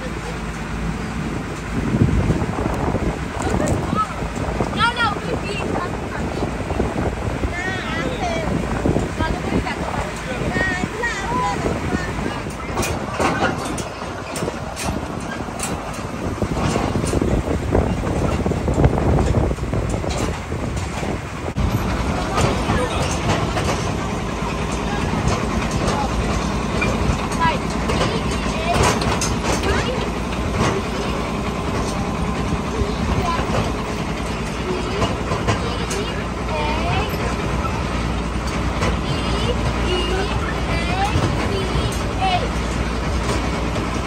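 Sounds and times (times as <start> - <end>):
people talking: 0.0 - 1.1, 2.6 - 15.8, 21.8 - 43.4
vehicle engine running: 0.0 - 44.0.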